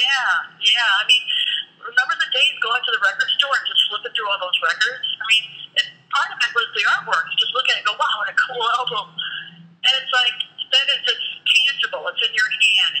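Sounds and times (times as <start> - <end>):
people talking over telephone: 0.0 - 13.0.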